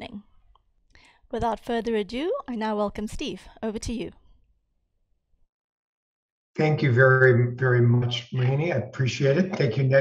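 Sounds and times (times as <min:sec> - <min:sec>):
woman speaking: 0:00.0 - 0:00.2, 0:01.3 - 0:04.2.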